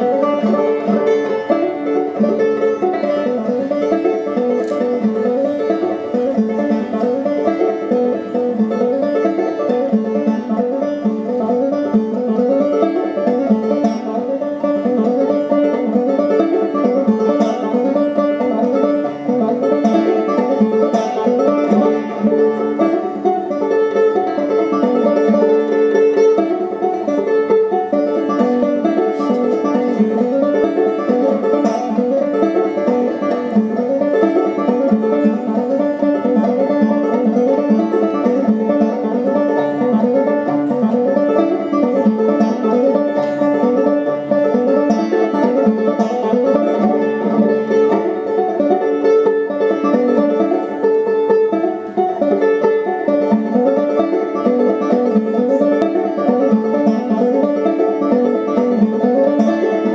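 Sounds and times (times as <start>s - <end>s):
banjo playing: 0.0s - 59.9s.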